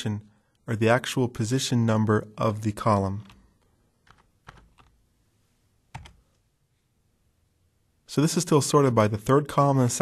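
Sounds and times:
computer keyboard keystroke: 0:04.0 - 0:05.0, 0:05.9 - 0:06.2.

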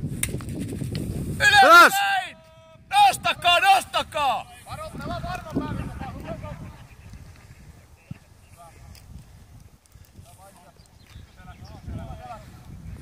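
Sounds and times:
wind rumble on microphone: 0:00.0 - 0:13.0
players shouting: 0:01.4 - 0:06.6.

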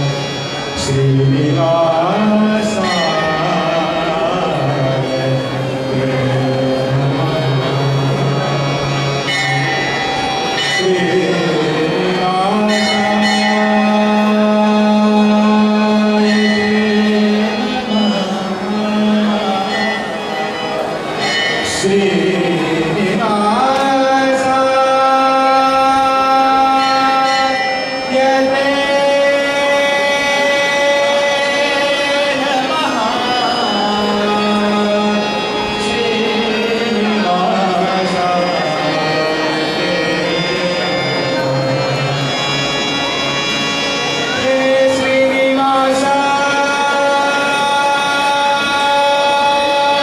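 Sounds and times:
harmonium devotional music: 0:00.0 - 0:50.0
young man singing long note: 0:00.0 - 0:50.0.

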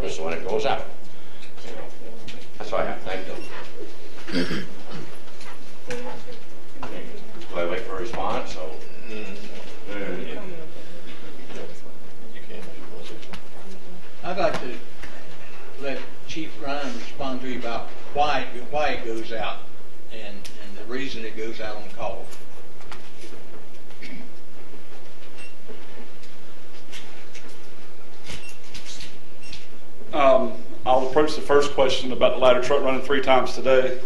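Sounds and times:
footsteps and shuffling: 0:00.0 - 0:18.1, 0:21.8 - 0:29.8
steady background hiss: 0:00.0 - 0:34.0.

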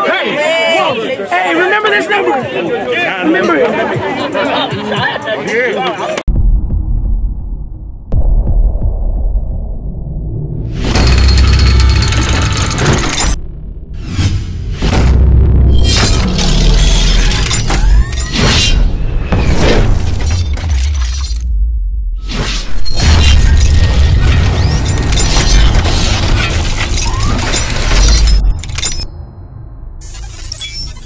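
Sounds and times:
deep low drone: 0:06.3 - 0:17.5
deep bass rumble: 0:06.3 - 0:17.6, 0:18.9 - 0:22.3
sharp cinematic hit: 0:06.3 - 0:18.1
shattering glassy crashes: 0:10.9 - 0:13.4, 0:22.9 - 0:29.1.

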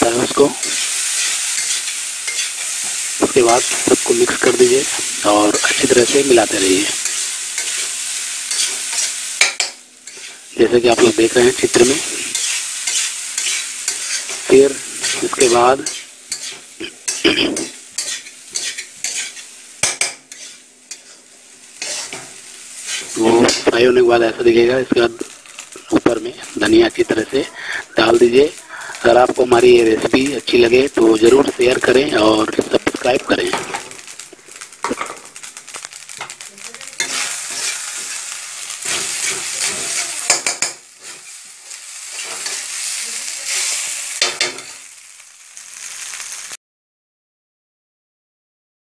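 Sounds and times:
faint frying sizzle: 0:00.0 - 0:46.6
metal spoon scraping pan: 0:00.6 - 0:03.9, 0:04.9 - 0:10.4, 0:11.7 - 0:23.8, 0:37.0 - 0:41.4, 0:42.1 - 0:42.8.

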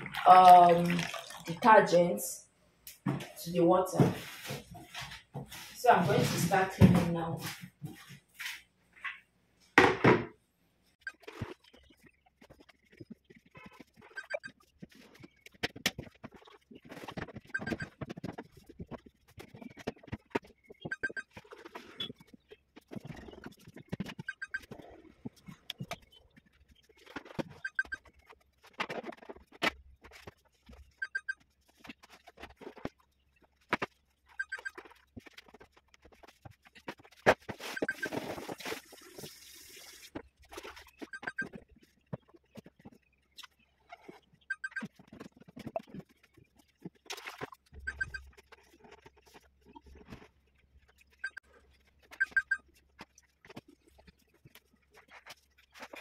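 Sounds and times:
cloth wiping plastic: 0:03.9 - 0:06.8, 0:34.8 - 0:41.0.

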